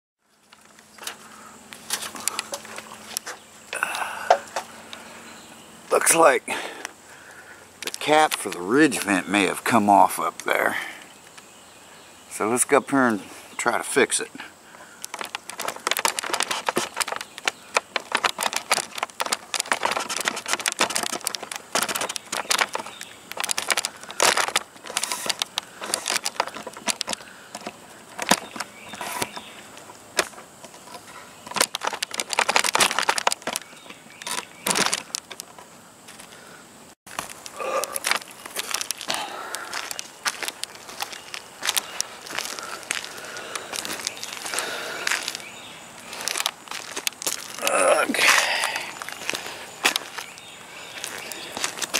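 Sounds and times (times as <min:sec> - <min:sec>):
footsteps crunching on gritty roof: 0:00.4 - 0:51.9.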